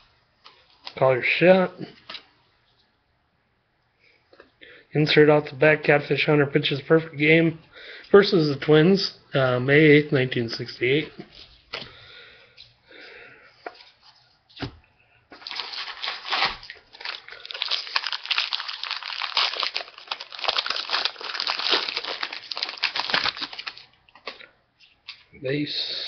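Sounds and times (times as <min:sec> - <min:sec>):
foil wrapper tearing and crinkling: 0:15.4 - 0:24.4.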